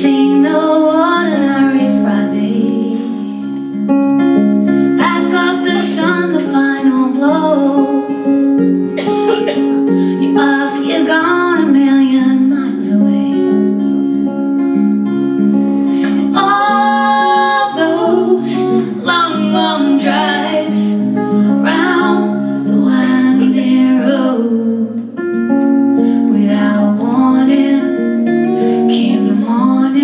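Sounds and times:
woman singing: 0.0s - 3.6s, 5.0s - 8.3s, 10.0s - 14.2s, 16.0s - 25.1s, 26.1s - 30.0s
acoustic guitar pattern: 0.0s - 30.0s.

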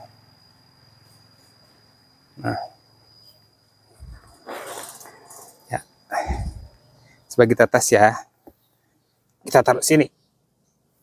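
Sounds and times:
microphone handling rustle: 3.9s - 5.4s.

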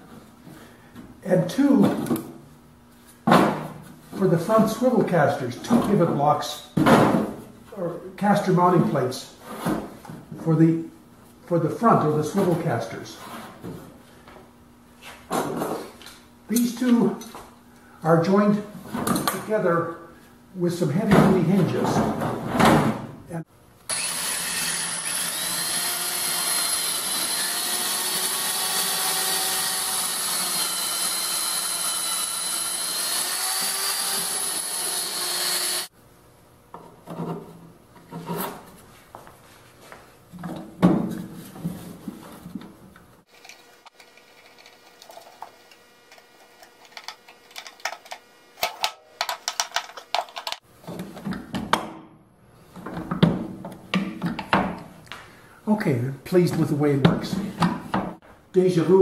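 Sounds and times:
power tool motor running: 23.9s - 35.9s.

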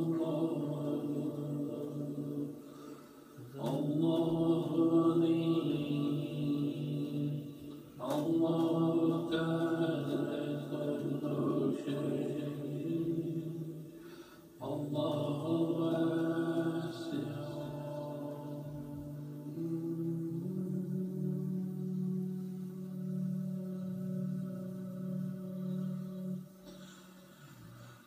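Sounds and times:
chanted droning voice: 0.0s - 13.9s, 14.6s - 27.7s.

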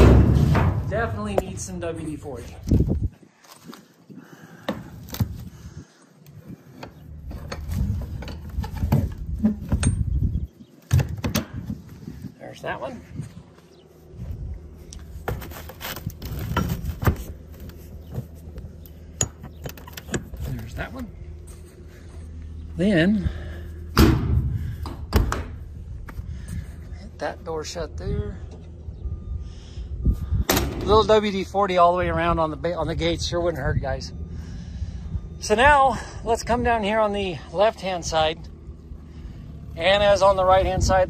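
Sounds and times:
metal door slamming shut: 0.0s - 1.4s
metal knocks and clanks: 0.0s - 2.0s, 7.2s - 10.2s
wind rumble on microphone: 0.0s - 18.8s, 23.2s - 27.0s, 28.0s - 36.8s, 38.7s - 41.0s.

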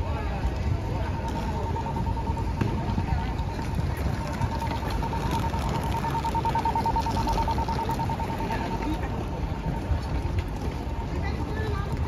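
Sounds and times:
city street noise: 0.0s - 12.0s
crossing signal beeping rapidly: 0.6s - 10.1s.

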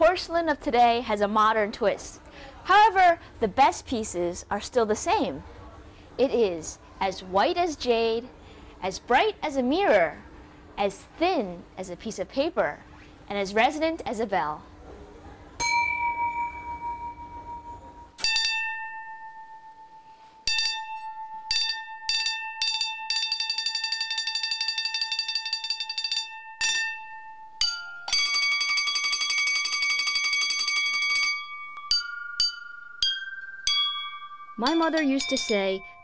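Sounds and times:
porcelain bowls ringing: 15.6s - 36.0s.

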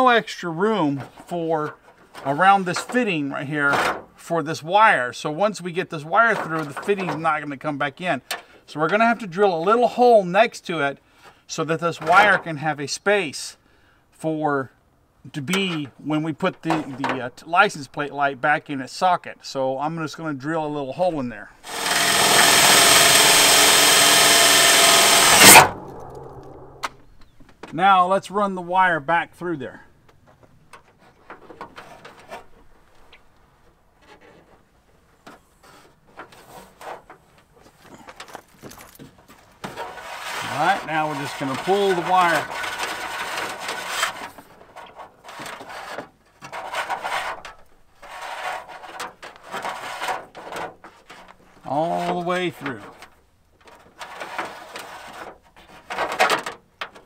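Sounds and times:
power drill boring metal: 21.6s - 26.0s
cable scraping through metal hole: 21.6s - 27.0s.

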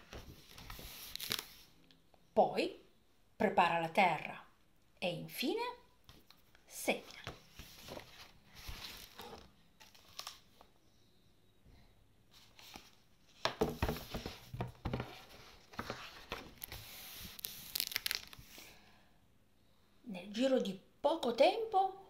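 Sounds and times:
book pages rustling: 0.0s - 1.7s, 7.1s - 10.7s, 12.3s - 18.6s.

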